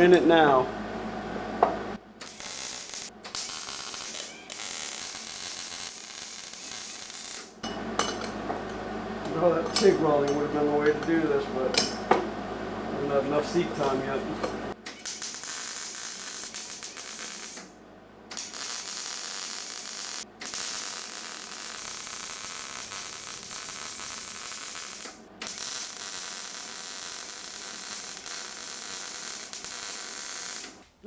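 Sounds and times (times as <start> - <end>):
welding arc crackling hiss: 2.2 - 7.6, 14.9 - 17.7, 18.3 - 30.9.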